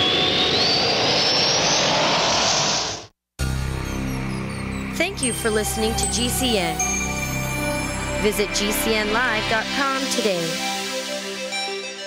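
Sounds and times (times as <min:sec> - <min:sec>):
jet engine spooling up effect: 0:00.0 - 0:03.1.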